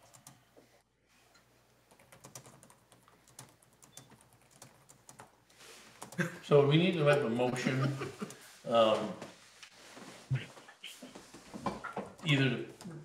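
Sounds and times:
laptop keyboard typing: 0.0 - 0.4, 1.9 - 6.3.

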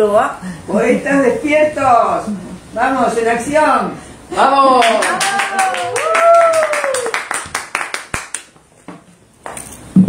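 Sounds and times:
hand claps: 4.8 - 8.7.

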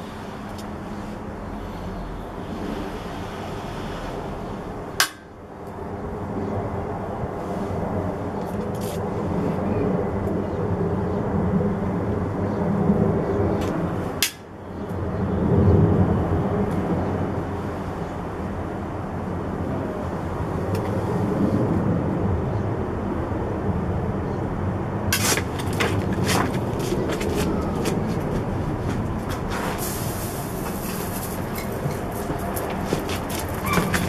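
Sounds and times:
low outdoor rumble: 0.0 - 34.0.

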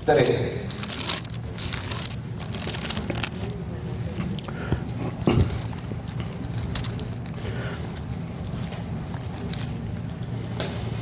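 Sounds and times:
low steady hum: 0.0 - 11.0
pages turning and rustling: 0.7 - 3.5, 6.4 - 7.4.

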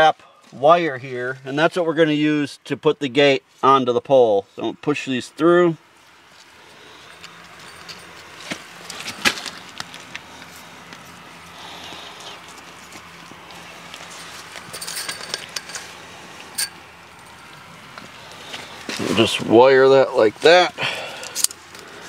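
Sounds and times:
wire clicking and rattling: 12.5 - 17.7
metal spring being handled: 14.5 - 15.9, 16.5 - 17.5.

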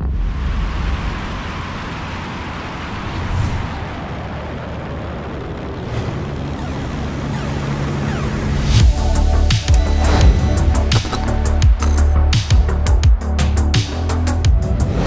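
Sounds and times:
wind roar: 0.0 - 7.2
propeller engine noise: 0.6 - 9.0.

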